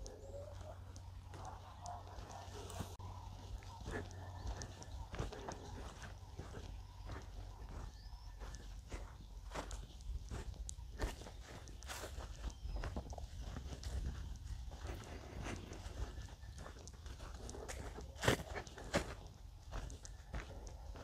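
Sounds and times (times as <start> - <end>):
footsteps on grass and dirt: 0.0 - 21.0.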